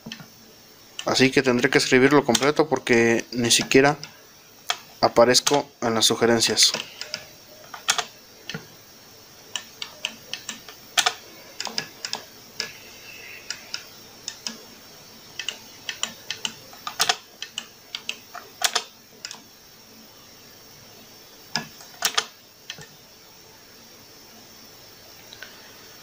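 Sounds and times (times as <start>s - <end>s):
arcade joystick and buttons clicking: 2.1s - 2.9s, 3.5s - 5.7s, 6.6s - 8.7s, 9.5s - 12.8s, 15.4s - 19.5s, 21.5s - 22.9s.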